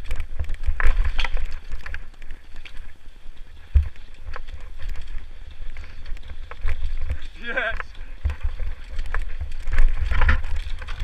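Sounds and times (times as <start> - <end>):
bike rattling and clacking: 0.0 - 11.0.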